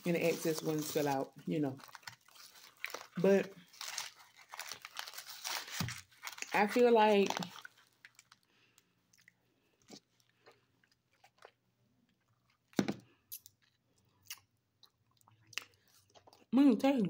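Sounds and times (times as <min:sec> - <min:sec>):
chewing frozen grape: 0:06.0 - 0:16.5.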